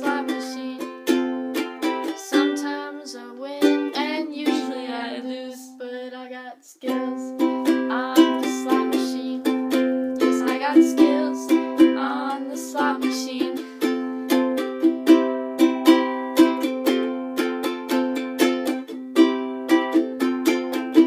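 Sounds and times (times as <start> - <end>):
ukulele strumming: 0.0 - 21.0.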